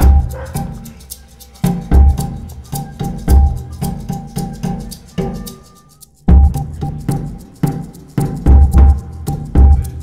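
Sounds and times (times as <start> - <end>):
electronic drums beating: 0.0 - 10.0.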